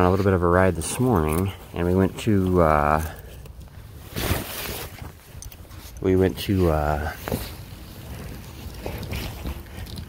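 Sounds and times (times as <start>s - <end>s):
phone handling rustle: 0.8s - 10.0s.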